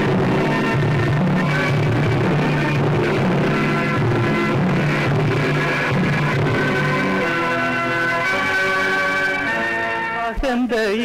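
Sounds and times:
instrumental film song music: 0.0s - 11.0s.

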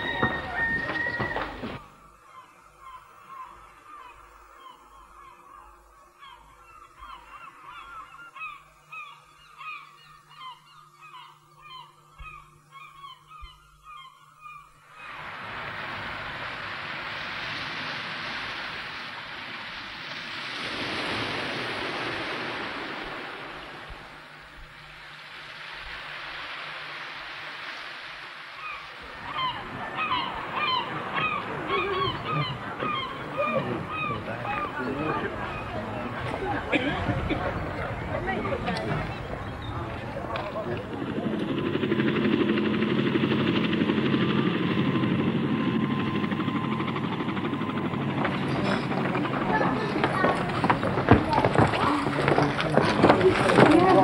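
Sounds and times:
flock of birds calling: 0.0s - 15.8s, 28.5s - 42.8s, 46.2s - 54.0s
outdoor background noise: 0.0s - 54.0s
steady rushing hiss: 13.8s - 51.2s
harsh gull calls: 28.6s - 40.0s.

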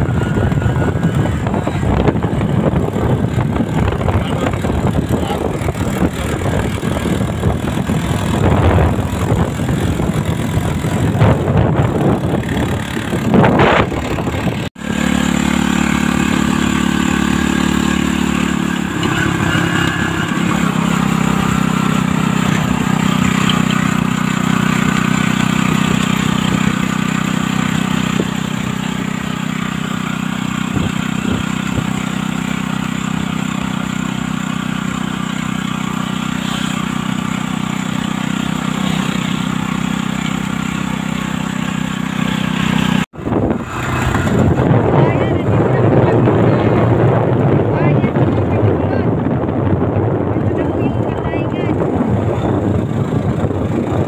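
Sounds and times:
road and wind noise: 0.0s - 54.0s
vehicle engine running: 0.0s - 54.0s.

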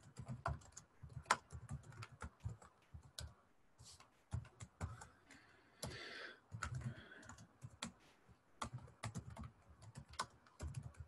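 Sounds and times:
keyboard typing: 0.0s - 8.0s, 8.6s - 11.0s.

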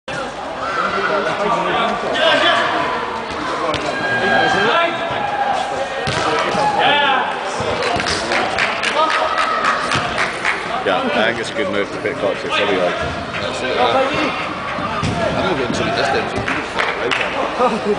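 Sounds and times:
people calling and talking: 0.1s - 17.9s.

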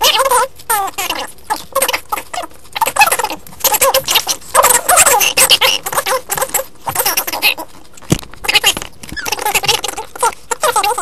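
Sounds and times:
sped-up squeaky voices: 0.0s - 11.0s.

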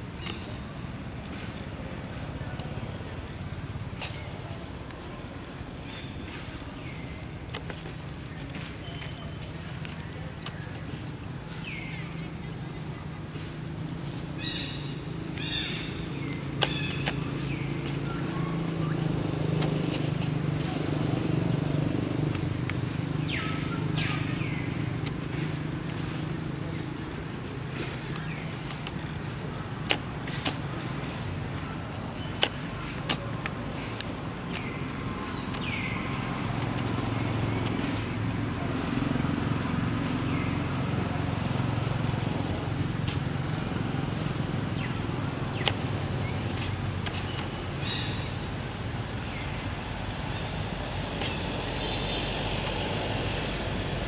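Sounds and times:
engine hum: 0.0s - 54.0s.

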